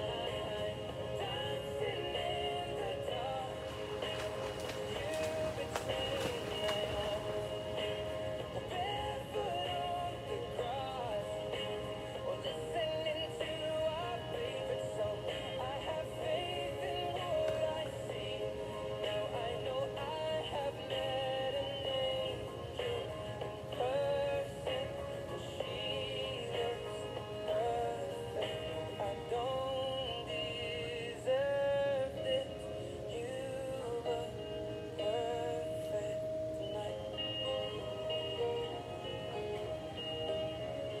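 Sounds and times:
pop song from a radio: 0.0s - 41.0s.

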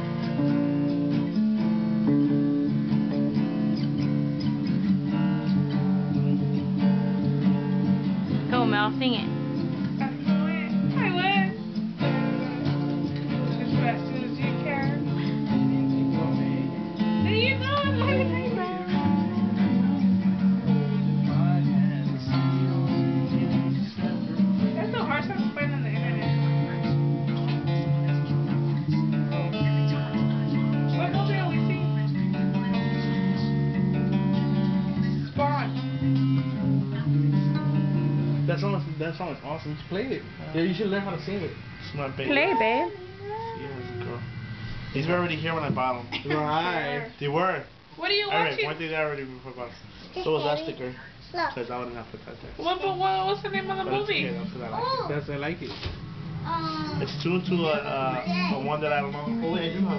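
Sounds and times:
acoustic guitar strumming: 0.0s - 59.9s
people's voices: 36.9s - 48.7s.

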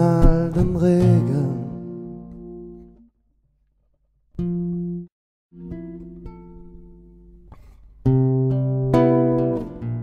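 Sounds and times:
person singing: 0.0s - 1.9s
acoustic guitar strummed chords: 0.0s - 3.0s, 4.4s - 10.0s.

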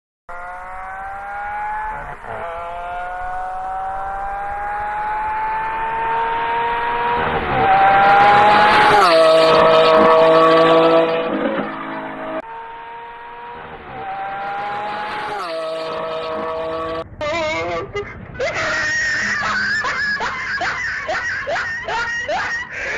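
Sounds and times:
car engine accelerating hard: 0.3s - 17.1s.

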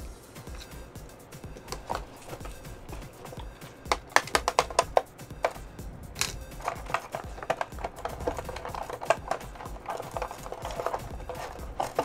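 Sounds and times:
soft background music: 0.0s - 12.0s
plastic clicks and rattles: 1.6s - 5.6s, 6.2s - 12.0s.

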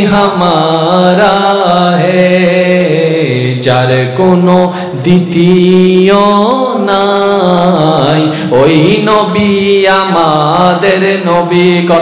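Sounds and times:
man chanting through microphones: 0.0s - 12.0s.

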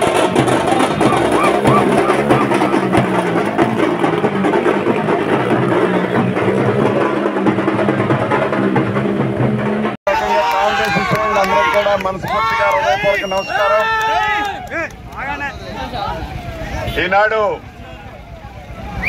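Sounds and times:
marching drums: 0.0s - 10.0s
crowd voices: 0.0s - 19.0s.

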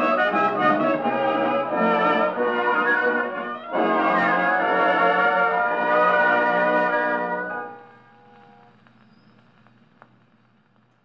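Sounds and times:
dance band on a record: 0.0s - 11.0s
record surface hiss: 0.0s - 11.0s
light record ticks: 7.5s - 11.0s.

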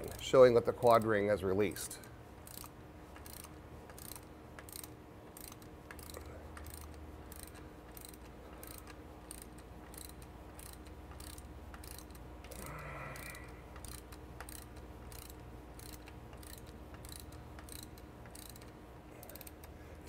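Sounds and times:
ratchet wrench clicking: 2.0s - 19.8s.

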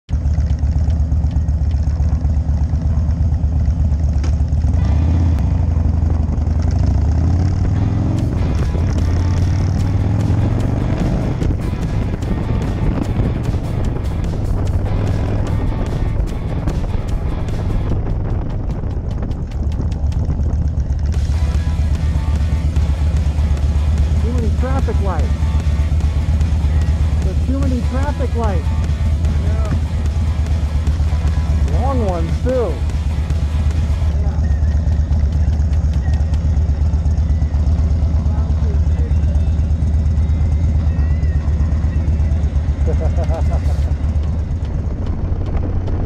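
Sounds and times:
motorcycle engine running: 0.0s - 46.0s
wind noise on microphone: 9.8s - 21.2s.

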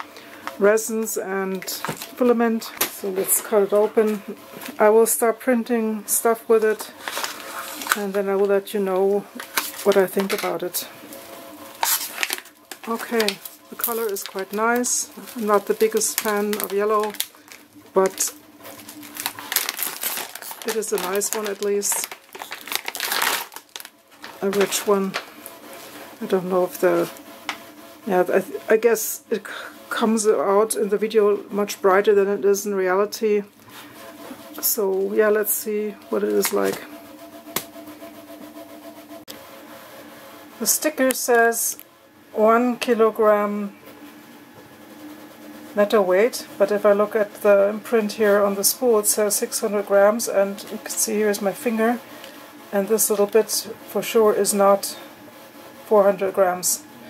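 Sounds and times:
steady hum: 0.0s - 57.0s
plastic bag crinkling: 6.7s - 25.8s.

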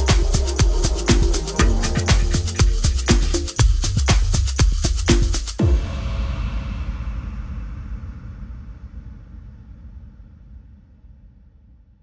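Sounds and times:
deep house beats: 0.0s - 5.7s
low rumble: 5.6s - 12.0s.

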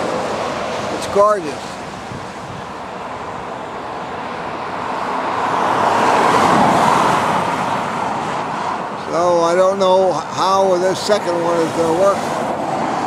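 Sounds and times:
vehicle tyre noise passing: 0.0s - 13.0s.

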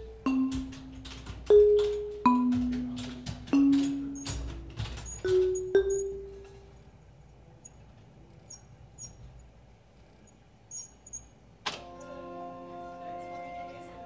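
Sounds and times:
mallet instrument ringing notes: 0.0s - 6.7s.

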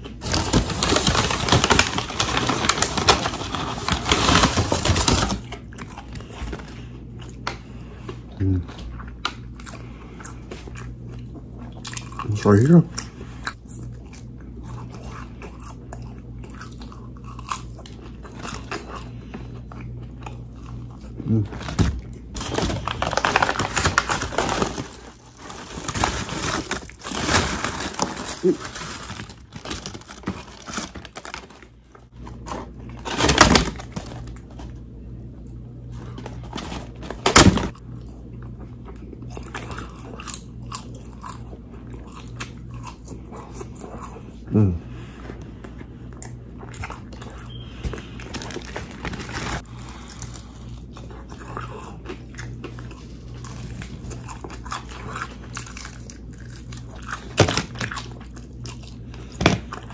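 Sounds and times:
paper bags rustling: 0.0s - 5.6s, 21.3s - 34.7s, 36.0s - 37.8s, 47.5s - 50.4s
chewing and crunching: 0.0s - 59.9s
steady low hum: 0.0s - 59.9s.

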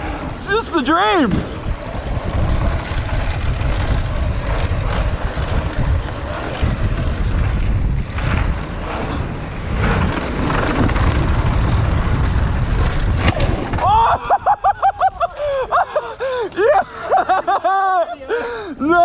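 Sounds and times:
bike tyres rolling on gravel: 0.0s - 15.5s
wind over microphone: 0.0s - 16.4s
bike knocks and rattles: 1.2s - 14.1s.

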